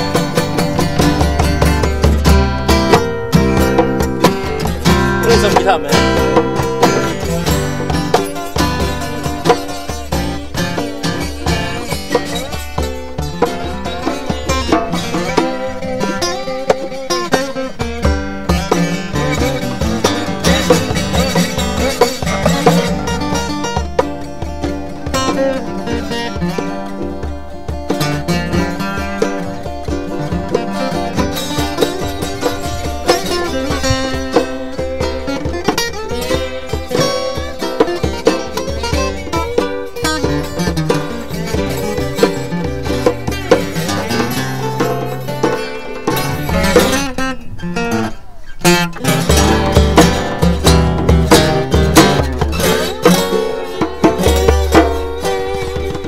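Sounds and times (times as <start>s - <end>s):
hand drum beat: 0.0s - 56.0s
slide blues acoustic guitars: 0.0s - 56.0s.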